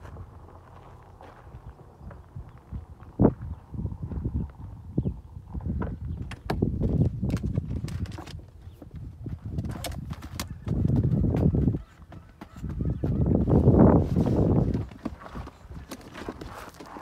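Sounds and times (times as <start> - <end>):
footsteps on gravel: 0.0 - 4.7, 6.8 - 17.0.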